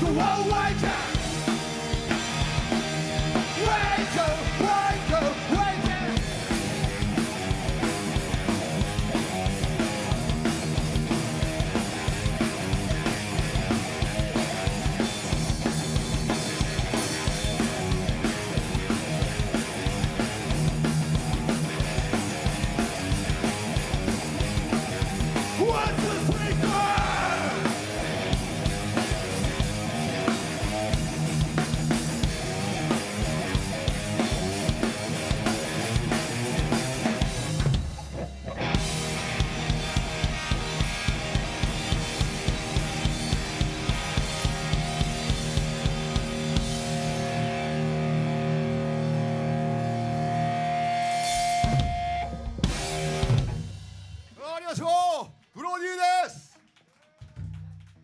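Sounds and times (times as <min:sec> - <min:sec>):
distorted electric guitar: 0:00.0 - 0:53.8
drum kit: 0:00.0 - 0:56.4.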